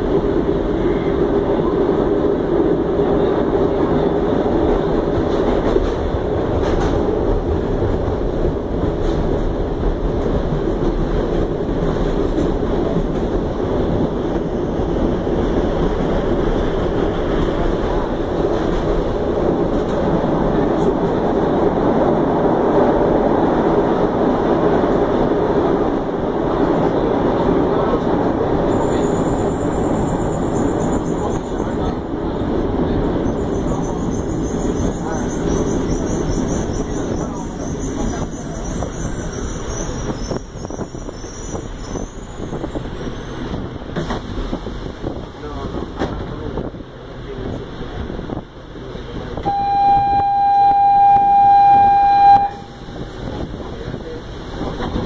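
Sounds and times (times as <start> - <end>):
subway train wheels rumbling on rails: 0.0 - 55.0.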